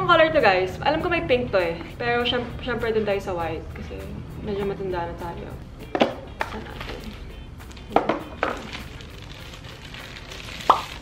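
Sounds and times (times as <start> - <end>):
cardboard and paper rustling: 6.5 - 11.0.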